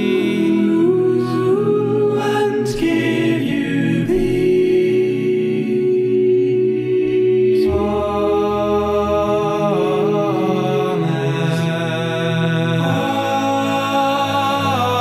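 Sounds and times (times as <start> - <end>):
male vocal quartet singing: 0.0 - 15.0.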